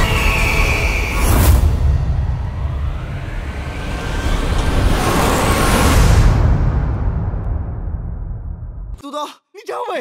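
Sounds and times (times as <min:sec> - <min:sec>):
rising whistle: 0:00.0 - 0:02.0.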